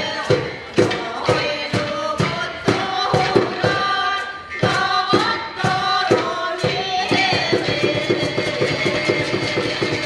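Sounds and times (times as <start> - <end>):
women's vocal ensemble singing: 0.0 - 10.0.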